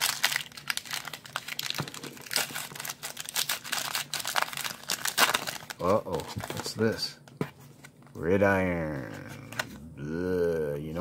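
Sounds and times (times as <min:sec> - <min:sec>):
wrapper tearing and crinkling: 0:00.0 - 0:06.8.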